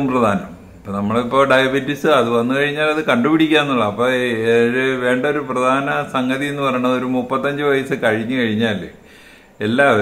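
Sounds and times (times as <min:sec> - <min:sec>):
man talking: 0:00.0 - 0:09.0, 0:09.6 - 0:10.0.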